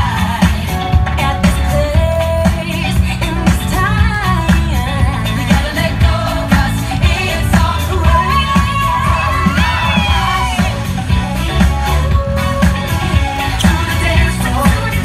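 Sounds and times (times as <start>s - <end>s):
heavy bass beat: 0.0s - 15.0s
pop song with sung vocal: 0.0s - 15.0s.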